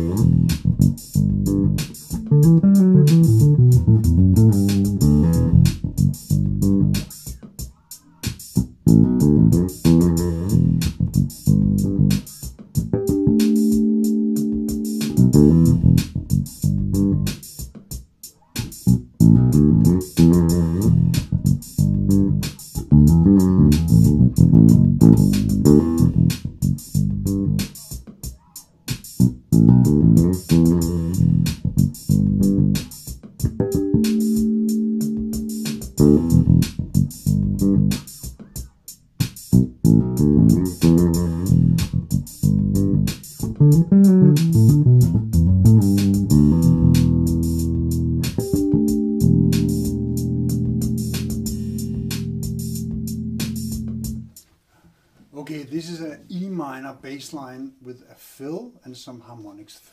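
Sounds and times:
bass harmonics ringing: 0:00.0 - 0:07.1, 0:08.6 - 0:17.4, 0:18.9 - 0:27.7, 0:29.2 - 0:38.0, 0:39.5 - 0:54.3
electric bass funky groove: 0:00.0 - 0:17.6, 0:18.4 - 0:54.4.

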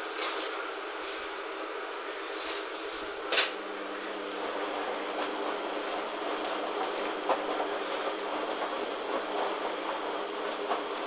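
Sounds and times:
washing machine drum churning: 0:04.5 - 0:11.0.

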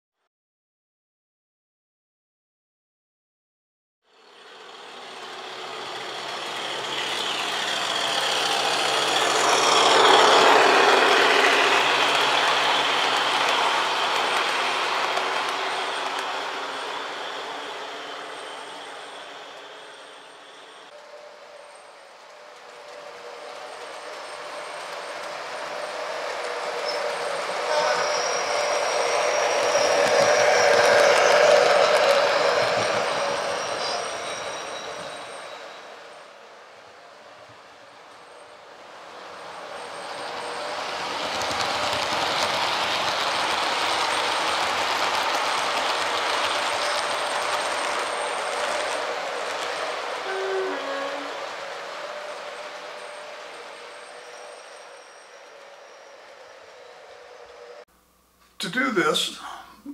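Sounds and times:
model train rolling rumble: 0:04.2 - 0:20.6, 0:39.2 - 0:57.8.

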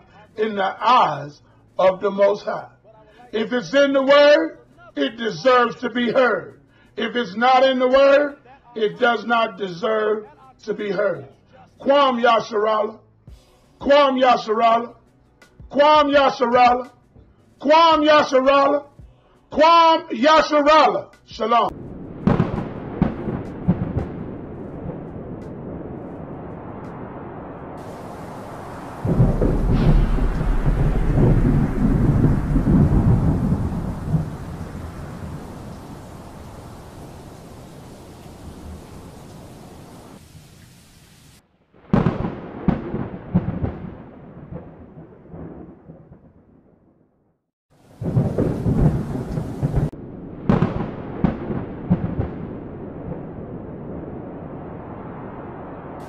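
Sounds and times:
rolling thunder: 0:21.7 - 0:40.2, 0:41.8 - 0:46.7, 0:47.9 - 0:56.0
rain: 0:21.7 - 0:46.0, 0:47.7 - 0:56.0.

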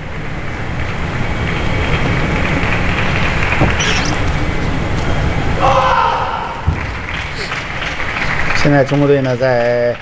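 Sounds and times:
arena crowd noise: 0:04.2 - 0:10.0.

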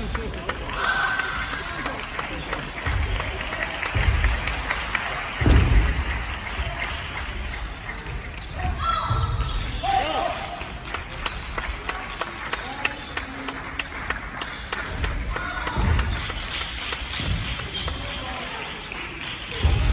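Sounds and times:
voices in hall: 0:00.0 - 0:19.9.

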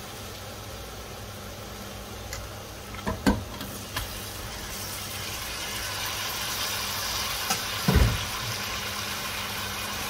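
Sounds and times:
chicken sizzling in hot oil: 0:00.0 - 0:10.0.

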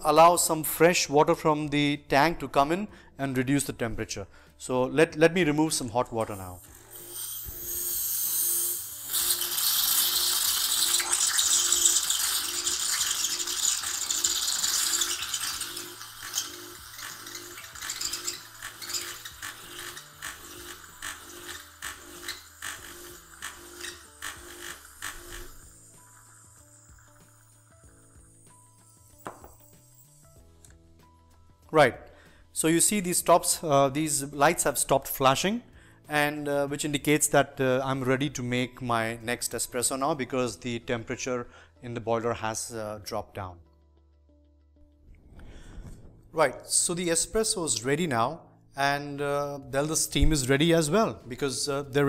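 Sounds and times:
steam wand hissing and spitting: 0:06.4 - 0:29.2
pump humming and ticking: 0:06.6 - 0:29.3.

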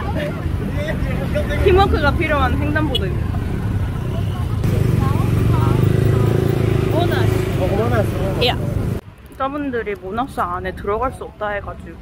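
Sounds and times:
motorbikes and cars passing: 0:00.0 - 0:12.0
voices talking: 0:00.0 - 0:12.0.

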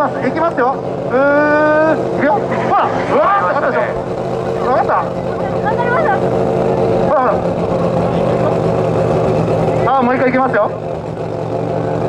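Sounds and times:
car engine running at low revs: 0:00.0 - 0:12.0.

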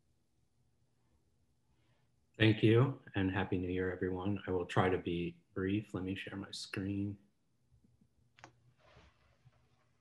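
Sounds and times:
soft rustle: 0:08.4 - 0:10.0.

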